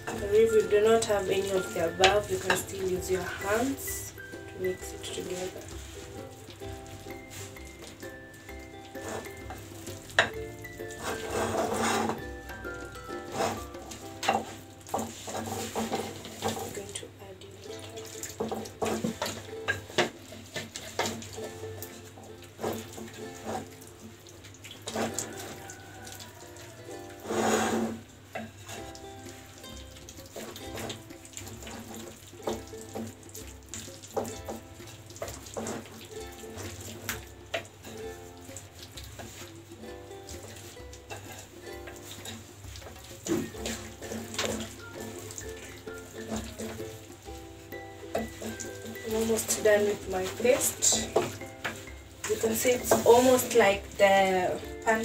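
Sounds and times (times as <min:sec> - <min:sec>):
background music: 0:00.0 - 0:55.0
water pouring: 0:00.0 - 0:55.0
spoon clacking against plate: 0:06.8 - 0:16.6.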